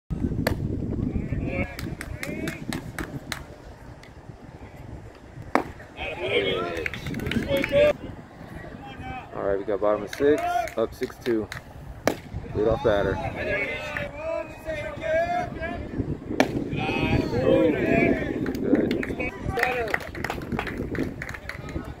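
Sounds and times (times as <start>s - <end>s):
voices shouting and chattering: 0.8s - 22.0s
small knocks and claps: 1.8s - 3.5s
baseball popping into mitt: 5.5s - 5.8s, 11.5s - 12.3s
people shouting: 6.0s - 7.9s, 12.7s - 15.9s, 16.7s - 18.4s.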